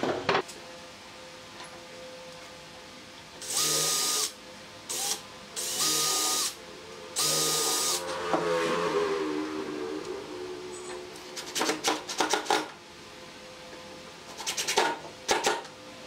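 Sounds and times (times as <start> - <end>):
cordless drill drilling into wood: 3.4 - 4.3, 4.9 - 6.6.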